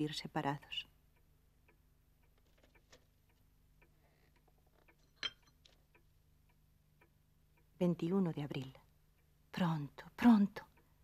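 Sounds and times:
faint ticking and clicks: 0.0s - 11.0s
porcelain teacup clink: 5.1s - 5.6s.

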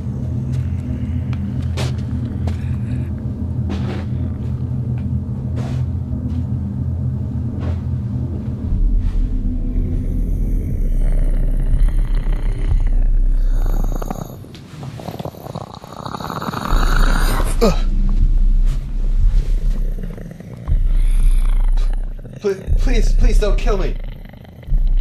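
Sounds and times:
low ominous rumbling drone: 0.0s - 25.0s.

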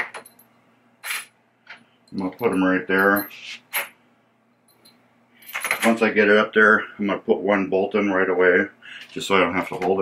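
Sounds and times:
man speaking: 5.8s - 10.0s.

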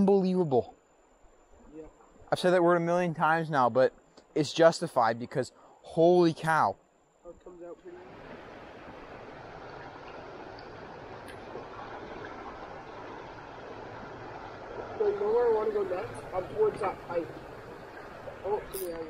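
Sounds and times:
flowing creek water: 7.9s - 19.0s.

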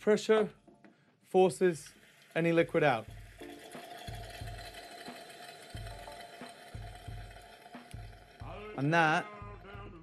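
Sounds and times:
faint background music with beat: 0.2s - 10.0s
pressurised gas hissing from tap: 1.7s - 8.2s.

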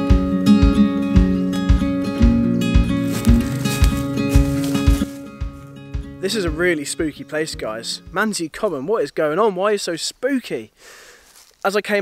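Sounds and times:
acoustic guitar folk music: 0.0s - 8.8s
steady beat: 0.6s - 8.2s.

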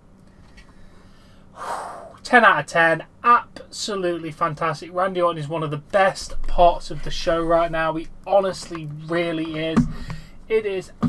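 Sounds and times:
man's sharp intake of breath: 0.8s - 2.2s.

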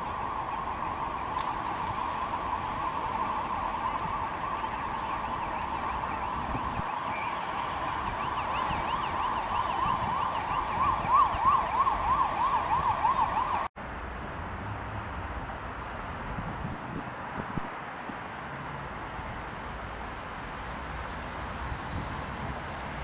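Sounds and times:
emergency siren yelping: 0.0s - 13.7s
city traffic noise: 0.0s - 23.0s.

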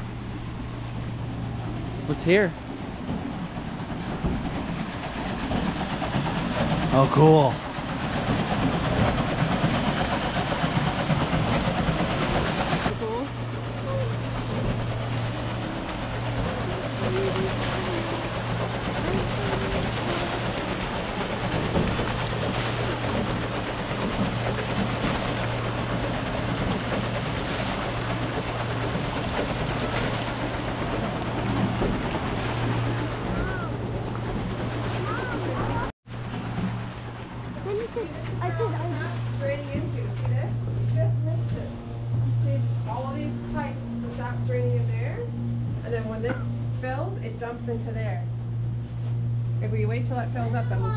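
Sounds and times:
stream water rushing and splashing: 0.0s - 40.2s
low machine hum: 0.0s - 50.9s.

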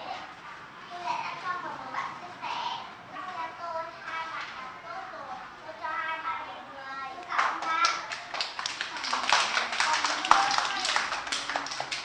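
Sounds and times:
children clapping hands: 7.4s - 12.0s.

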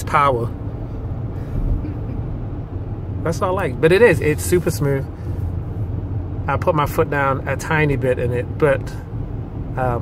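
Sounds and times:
car engine cruising: 0.0s - 10.0s
tyres humming on road: 0.0s - 10.0s.

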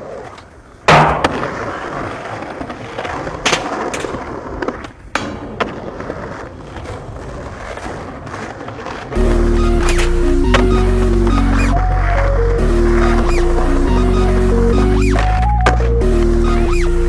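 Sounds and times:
skateboard pops and landings: 0.0s - 9.2s, 9.8s - 12.2s, 15.0s - 16.0s
skateboard rolling on stone: 0.0s - 16.8s.

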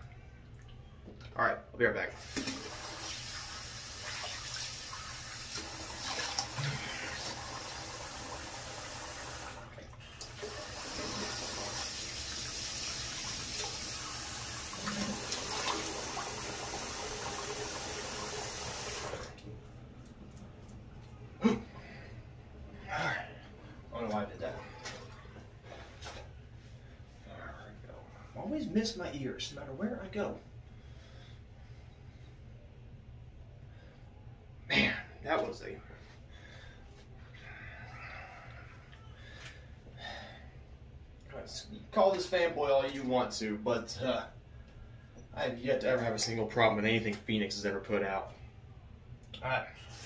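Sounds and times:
low steady hum: 0.0s - 2.7s, 19.0s - 50.0s
tap water running and splashing: 2.2s - 19.4s.

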